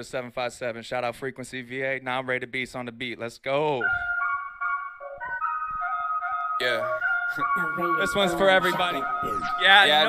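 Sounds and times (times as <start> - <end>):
hip-hop beat melody: 3.8 - 10.0.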